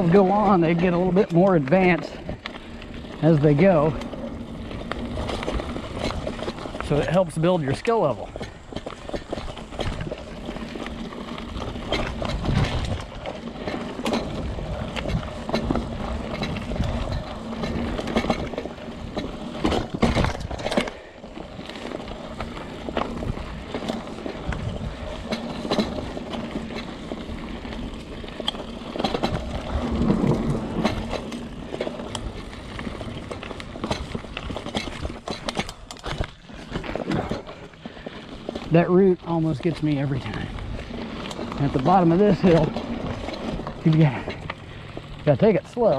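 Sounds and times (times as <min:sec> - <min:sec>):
bike rattling: 0:00.0 - 0:45.9
tyres rumbling on dirt: 0:00.0 - 0:45.9.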